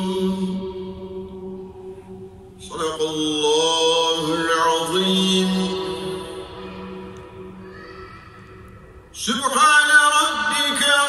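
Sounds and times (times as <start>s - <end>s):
man chanting melodic recitation: 0.0s - 1.2s, 2.6s - 7.0s, 9.2s - 11.0s.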